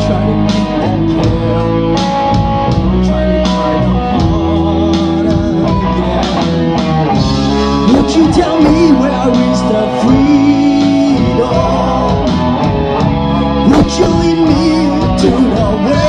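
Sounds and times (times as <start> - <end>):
electric guitars: 0.0 - 16.0
steady drumbeat: 0.0 - 16.0.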